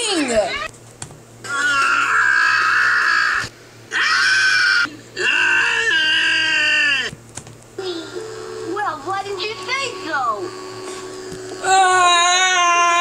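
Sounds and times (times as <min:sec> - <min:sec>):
cartoon character screaming: 0:01.4 - 0:07.1, 0:11.6 - 0:13.0.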